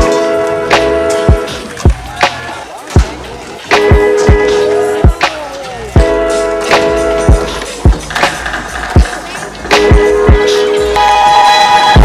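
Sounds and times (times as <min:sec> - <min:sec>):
music with deep kick drum: 0:03.0 - 0:05.4, 0:06.0 - 0:11.0.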